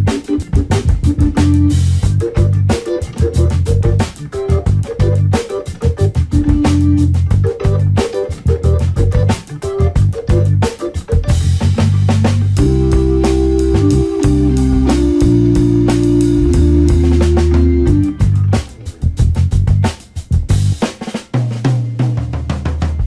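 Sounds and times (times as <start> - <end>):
music with drum beat and bass: 0.0 - 23.0.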